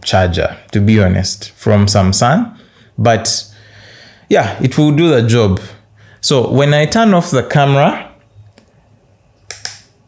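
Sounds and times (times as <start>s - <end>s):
camera power switch clicks: 9.4s - 9.9s.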